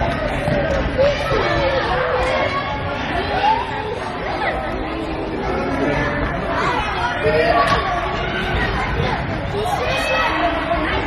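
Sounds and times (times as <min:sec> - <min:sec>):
children calling out and chattering: 0:00.0 - 0:11.0.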